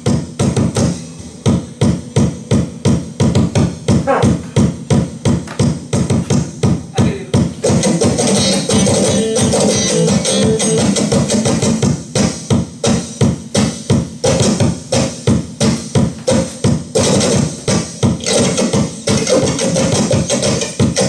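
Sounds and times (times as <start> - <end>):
electric guitar chords: 7.8 - 11.4.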